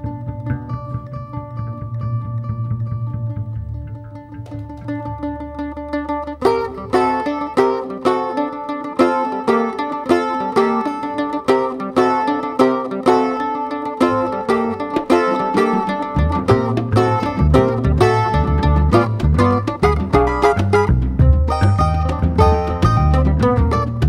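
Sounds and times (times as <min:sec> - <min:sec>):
drum kit: 0:00.0 - 0:07.0, 0:15.0 - 0:24.0
double bass: 0:00.0 - 0:24.0
mandolin plucked melody: 0:00.0 - 0:24.0.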